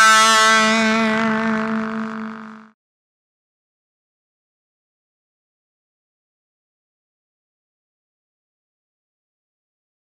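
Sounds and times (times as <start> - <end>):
electric guitar holding a note: 0.0 - 2.8.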